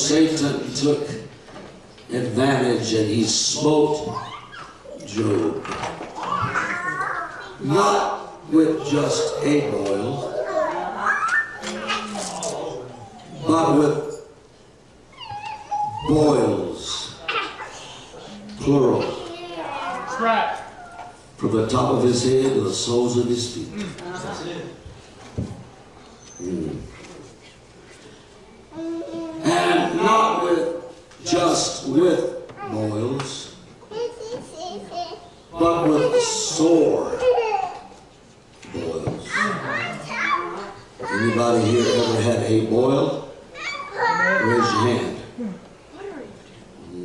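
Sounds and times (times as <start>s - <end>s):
man speaking through microphone: 0.0s - 1.4s, 2.1s - 4.3s, 5.0s - 5.8s, 7.6s - 10.4s, 13.3s - 14.3s, 16.0s - 17.2s, 18.6s - 19.3s, 21.4s - 24.8s, 29.4s - 33.6s, 35.5s - 37.4s, 41.0s - 43.4s, 44.3s - 45.4s
man preaching into a microphone: 7.6s - 10.2s, 29.4s - 33.6s.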